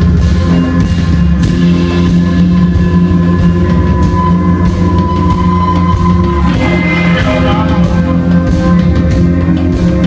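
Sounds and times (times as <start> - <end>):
live rock band playing: 0.0 - 10.0
high ringing tone: 0.4 - 8.4.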